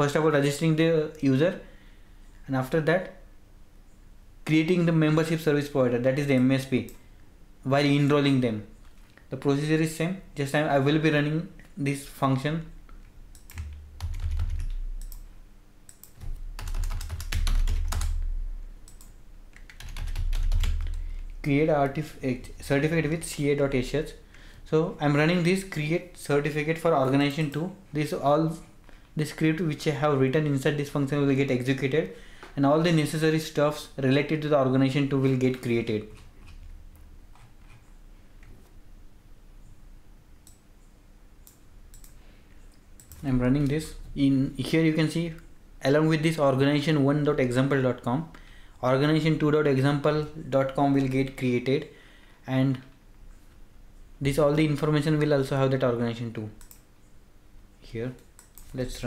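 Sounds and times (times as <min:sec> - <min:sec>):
faint steady low hum: 0:00.0 - 0:59.0
computer mouse clicks: 0:12.9 - 0:15.3, 0:15.9 - 0:16.4, 0:18.8 - 0:19.9, 0:40.4 - 0:43.7, 0:56.6 - 0:56.9, 0:58.2 - 0:58.8
computer keyboard typing: 0:13.3 - 0:15.3, 0:15.9 - 0:22.0, 0:43.0 - 0:43.7.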